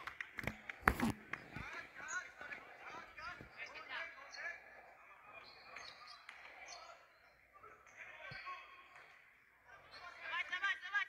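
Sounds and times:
faint voices: 0:00.3 - 0:11.0.

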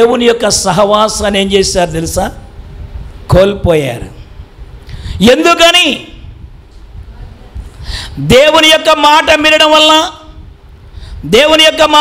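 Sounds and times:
low hiss: 0:00.0 - 0:12.0
sharp intake of breath: 0:04.8 - 0:05.2, 0:07.6 - 0:08.2, 0:10.8 - 0:11.3.

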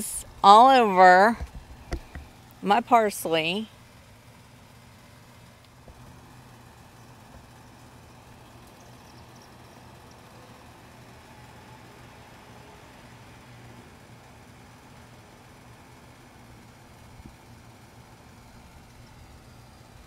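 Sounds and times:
distant motor humming: 0:00.0 - 0:20.0.

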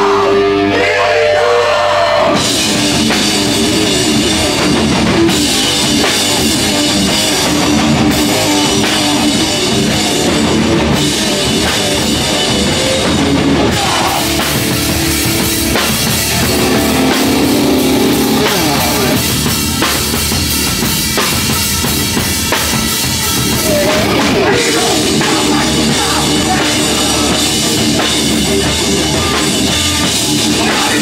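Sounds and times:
bass guitar: 0:00.0 - 0:31.0
distorted electric guitars: 0:00.0 - 0:31.0
pounding drum kit: 0:02.2 - 0:31.0.

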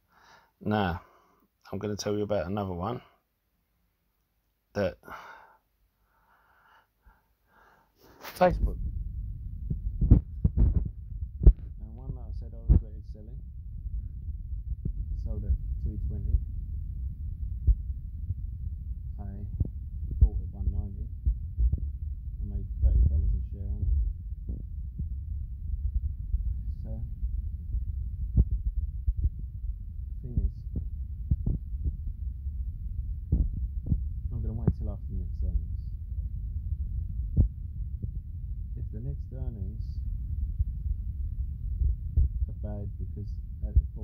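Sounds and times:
man speaking muffled: 0:04.8 - 0:05.0, 0:08.2 - 0:08.8, 0:11.8 - 0:13.4, 0:15.2 - 0:16.4, 0:19.2 - 0:19.6, 0:20.2 - 0:21.1, 0:22.4 - 0:24.0, 0:26.6 - 0:27.1, 0:30.2 - 0:30.7, 0:34.3 - 0:35.8, 0:38.8 - 0:40.0, 0:42.5 - 0:44.0
steady low rumble: 0:07.6 - 0:44.0
sharp low thump: 0:08.5 - 0:38.8
muffled voice: 0:11.8 - 0:13.4, 0:19.2 - 0:19.5, 0:20.2 - 0:21.1, 0:22.4 - 0:23.9, 0:42.5 - 0:44.0.

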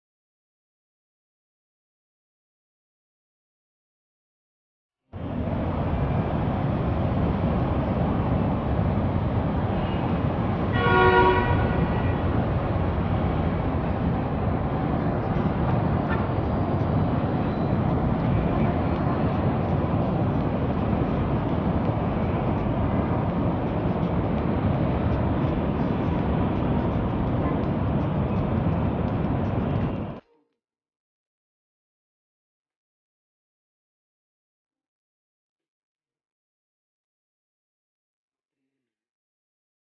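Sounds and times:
city traffic noise: 0:05.2 - 0:30.2
vehicle horn: 0:10.7 - 0:12.5.

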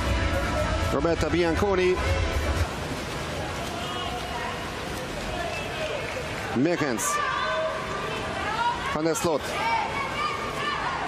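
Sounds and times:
reverberant crowd murmur: 0:02.0 - 0:11.0.

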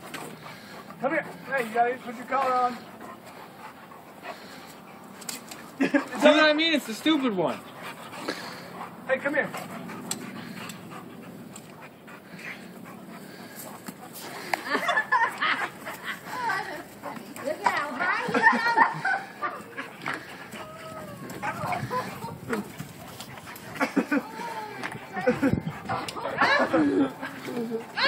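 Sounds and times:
dogs panting: 0:00.0 - 0:28.0
people talking and calling out: 0:00.3 - 0:28.0.

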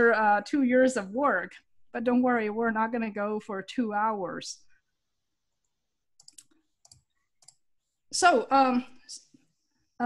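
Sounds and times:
computer mouse clicks: 0:05.6 - 0:07.7.

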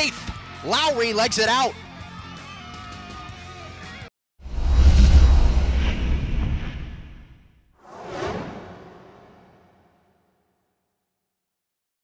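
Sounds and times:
whoosh: 0:04.4 - 0:10.2.

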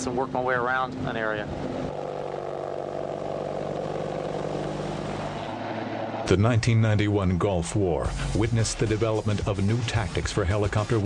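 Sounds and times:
helicopter hovering: 0:00.0 - 0:11.0.

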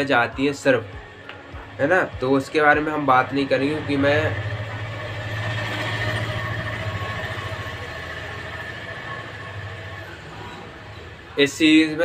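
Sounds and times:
train passing: 0:00.8 - 0:12.0.

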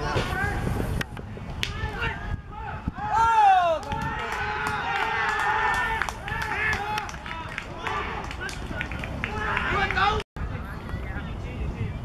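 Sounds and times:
people shouting: 0:01.7 - 0:08.6, 0:09.2 - 0:10.2.

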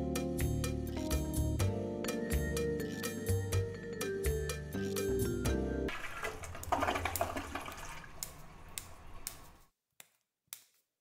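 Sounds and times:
toilet flushing: 0:05.9 - 0:09.2.

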